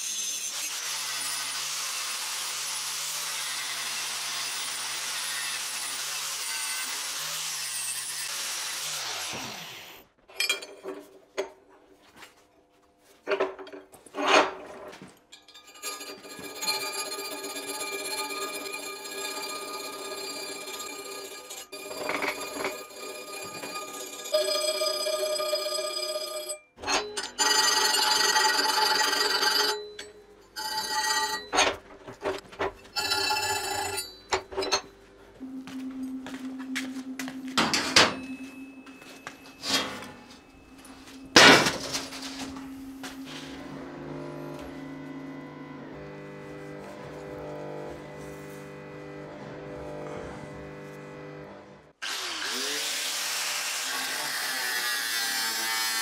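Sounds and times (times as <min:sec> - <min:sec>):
angle grinder grinding steel: 0:00.0 - 0:10.0, 0:15.3 - 0:34.9, 0:37.6 - 0:56.0.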